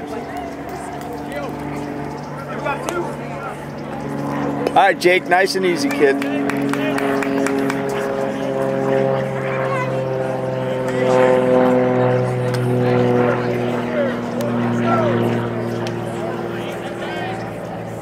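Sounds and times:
engine drone falling in pitch: 0:00.0 - 0:18.0
faint voices: 0:00.0 - 0:18.0.

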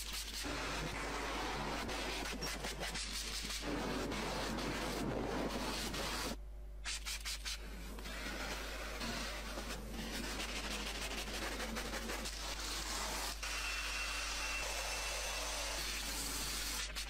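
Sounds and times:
cloth rubbing on car surfaces: 0:00.5 - 0:13.3.

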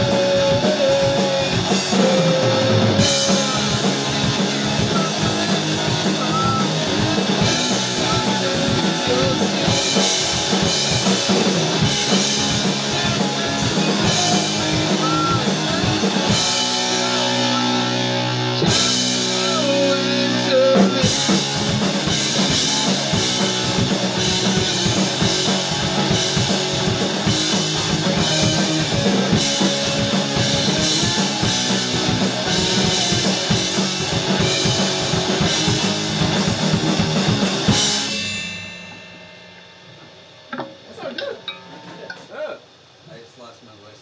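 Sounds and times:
electric bass: 0:00.0 - 0:42.3
electric guitar: 0:00.0 - 0:42.4
drum kit steady beat: 0:00.0 - 0:42.8.

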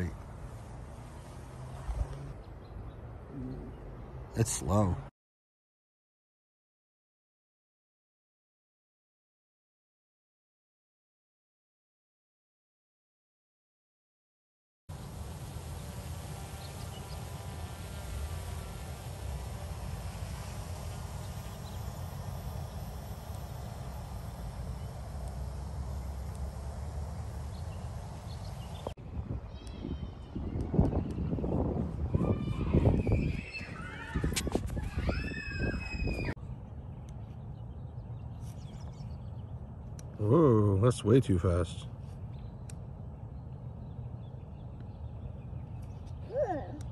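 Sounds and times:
drone rotor hum: 0:14.9 - 0:29.4
wind noise on microphone: 0:27.9 - 0:36.7.

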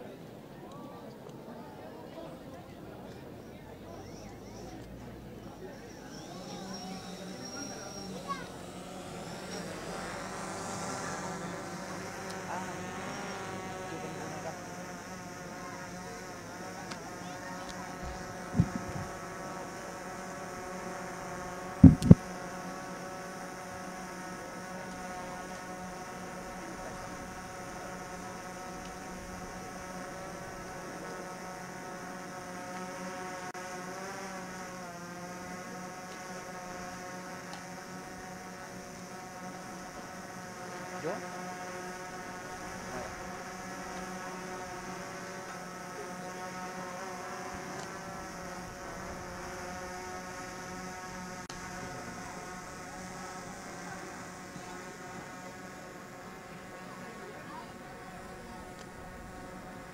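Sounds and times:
steady hum: 0:05.4 - 0:59.9.

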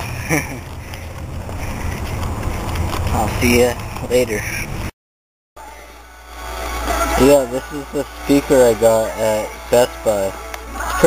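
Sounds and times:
wind buffeting microphone: 0:00.1 - 0:04.9.

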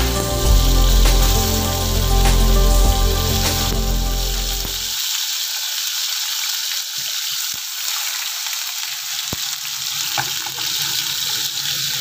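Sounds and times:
cheese sizzling in hot oil: 0:00.0 - 0:12.0.

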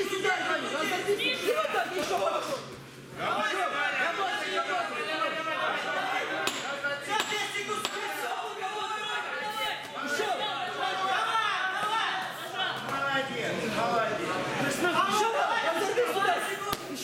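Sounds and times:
voices shouting in echoing hall: 0:00.0 - 0:17.0.

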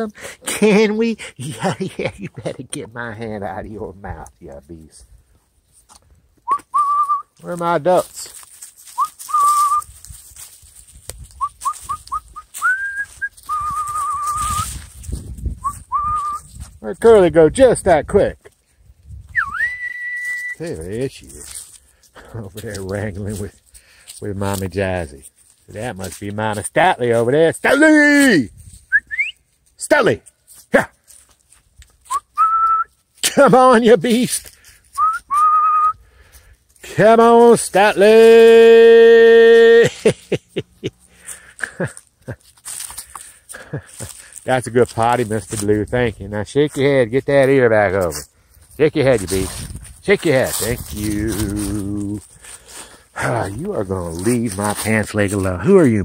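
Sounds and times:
person whistling: 0:06.4 - 0:07.3, 0:09.0 - 0:09.9, 0:11.4 - 0:14.8, 0:15.6 - 0:16.5, 0:19.3 - 0:20.6, 0:28.9 - 0:29.4, 0:32.1 - 0:33.0, 0:34.9 - 0:36.0.

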